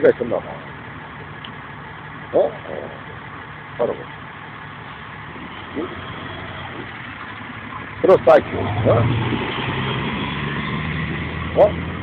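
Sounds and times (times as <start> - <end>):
low engine rumble: 0.0 - 12.0
street traffic noise: 0.0 - 12.0.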